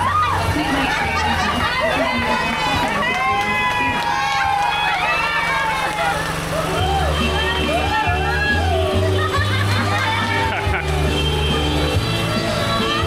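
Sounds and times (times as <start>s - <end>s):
background music with bass: 0.0s - 13.0s
women talking and laughing: 0.0s - 13.0s.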